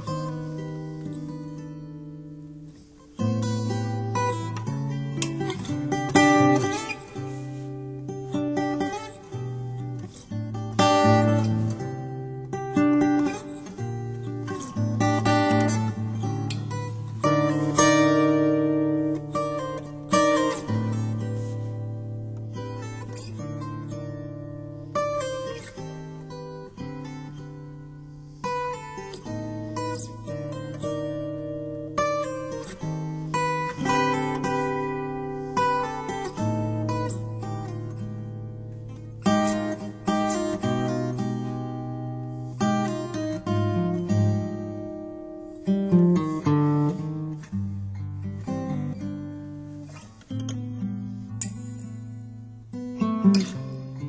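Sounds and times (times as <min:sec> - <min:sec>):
solo acoustic guitar: 0:00.0 - 0:54.0.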